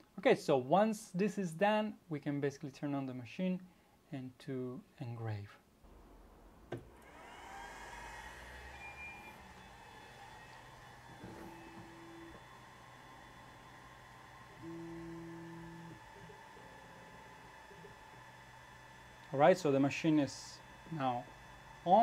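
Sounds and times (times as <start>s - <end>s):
cooling fans whirring: 6.6s - 22.0s
stepper motors humming: 6.7s - 22.0s.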